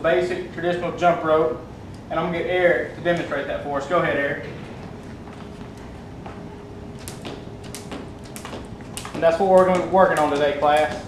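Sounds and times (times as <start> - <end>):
jump rope clicking on hard floor: 5.4 - 11.0.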